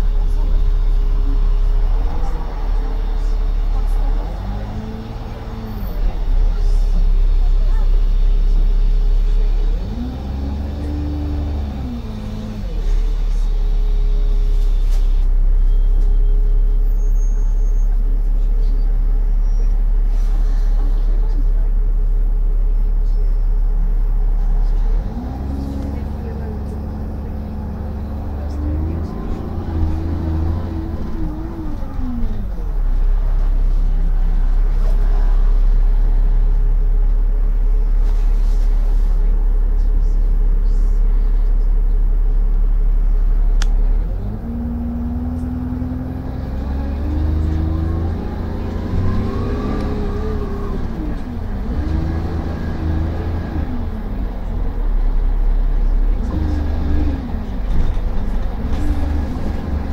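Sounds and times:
bus engine accelerating: 0:00.0 - 0:59.9.

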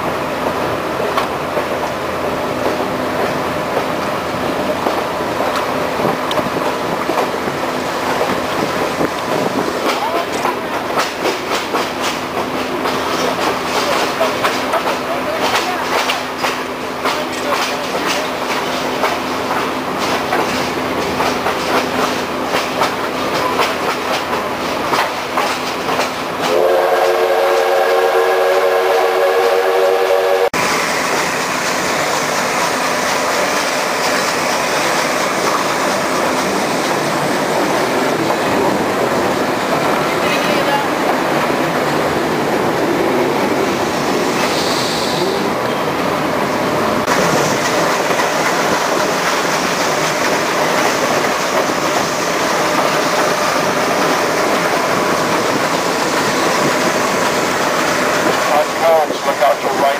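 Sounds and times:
train wheels clattering: 0:02.5 - 0:26.7, 0:31.0 - 0:45.3, 0:47.0 - 0:59.9
steam locomotive whistle: 0:26.4 - 0:30.5.

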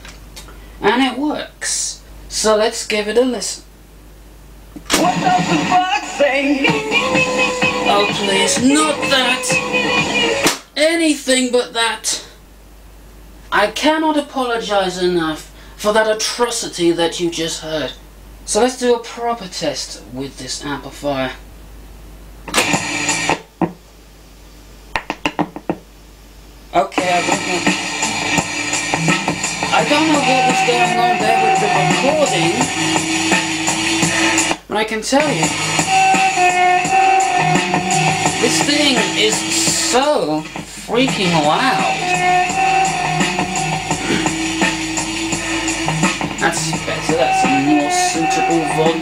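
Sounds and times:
music through small speaker: 0:04.9 - 0:10.5, 0:22.5 - 0:23.8, 0:26.9 - 0:34.6, 0:35.2 - 0:49.0.

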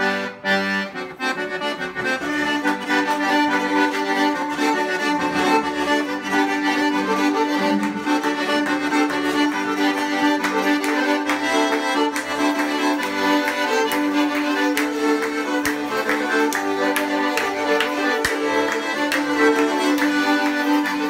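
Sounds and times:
bowed fiddle: 0:00.0 - 0:21.0
button accordion: 0:00.0 - 0:21.0
held drone note: 0:04.7 - 0:09.6.

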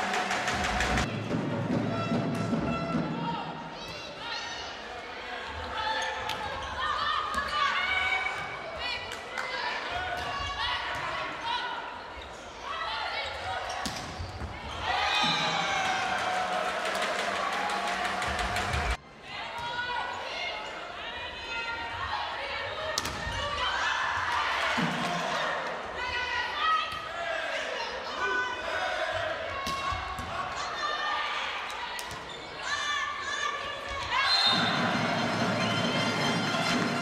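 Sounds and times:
crowd shouting and cheering: 0:00.0 - 0:37.0.

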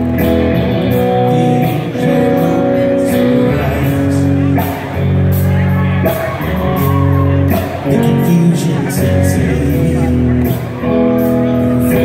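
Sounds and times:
live rock band through pa: 0:00.0 - 0:12.0.

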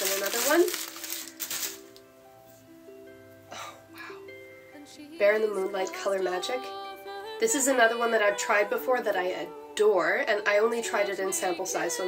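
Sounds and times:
paper packaging crinkling: 0:00.0 - 0:02.1
soft background music: 0:00.0 - 0:12.0.

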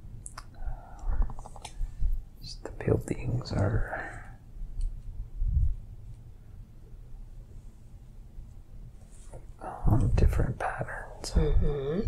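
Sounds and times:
mouth clicks and lip smacks: 0:00.2 - 0:01.8.

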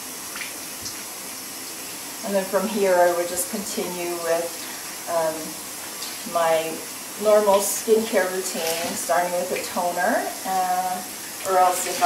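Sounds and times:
sink tap running: 0:02.5 - 0:12.0.

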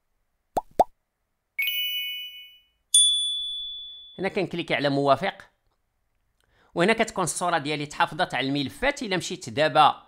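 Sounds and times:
ringing ding: 0:01.6 - 0:04.2
bright chime: 0:01.6 - 0:04.3.

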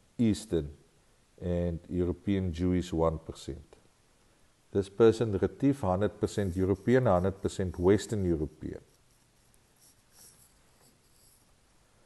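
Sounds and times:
faint rustle: 0:06.2 - 0:12.0.

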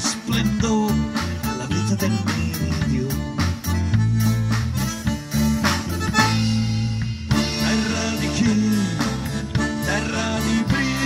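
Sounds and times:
drum kit beat: 0:00.0 - 0:11.0
electric bass line: 0:00.0 - 0:11.0
button accordion: 0:01.0 - 0:11.0.

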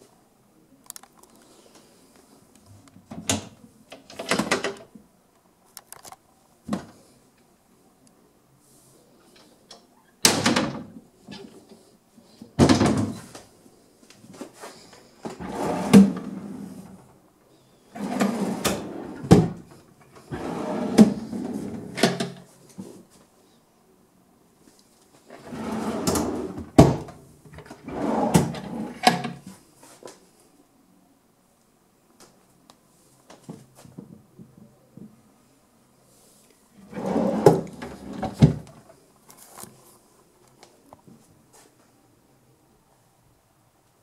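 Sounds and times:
wooden drawer sliding: 0:15.3 - 0:16.9, 0:18.0 - 0:19.6, 0:20.2 - 0:22.4, 0:25.3 - 0:29.4, 0:36.8 - 0:38.7.

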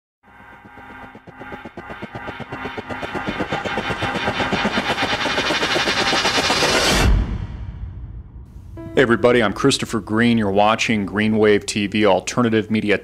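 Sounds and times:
rapid pulsing over held tones: 0:00.2 - 0:07.0.

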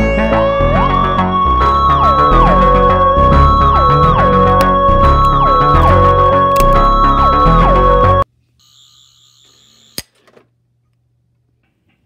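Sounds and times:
high warbling electronic tone: 0:00.5 - 0:08.2.

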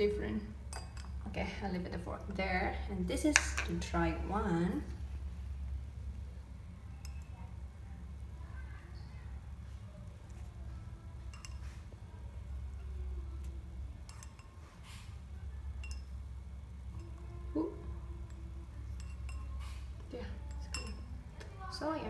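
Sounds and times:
steady low hum: 0:00.0 - 0:22.0
forks clinking against glasses: 0:00.7 - 0:01.2, 0:07.0 - 0:07.3, 0:11.3 - 0:11.8, 0:14.0 - 0:14.7, 0:15.8 - 0:16.2, 0:18.3 - 0:19.8, 0:20.4 - 0:21.1
forks tapping on a plate: 0:00.7 - 0:01.2, 0:07.0 - 0:07.3, 0:11.3 - 0:11.8, 0:14.0 - 0:14.7, 0:15.8 - 0:16.2, 0:18.3 - 0:19.8, 0:20.4 - 0:21.1.

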